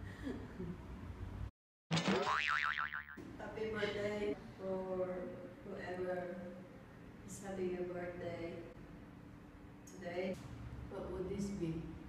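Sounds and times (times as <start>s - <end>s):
cartoon boing sound effect: 1.9s - 3.2s.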